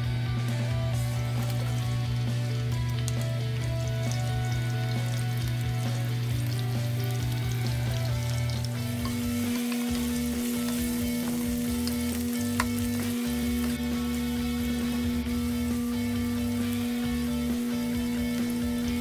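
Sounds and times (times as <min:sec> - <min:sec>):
low background music: 0:00.0 - 0:19.0
onion sizzling in hot oil: 0:00.4 - 0:19.0.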